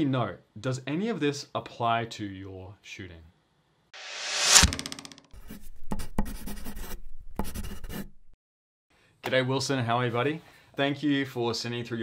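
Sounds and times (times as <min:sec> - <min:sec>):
pen scratching on paper: 0:05.4 - 0:08.1.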